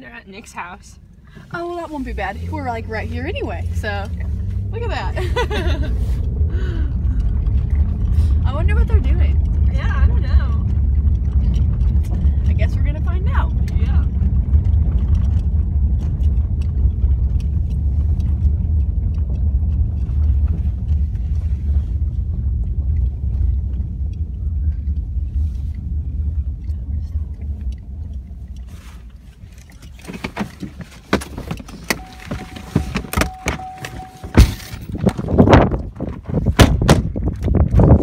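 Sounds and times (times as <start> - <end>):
car road and engine rumble: 0.0 - 38.0
car door clicks and knocks: 30.1 - 37.9
steady electronic tone: 32.0 - 34.6.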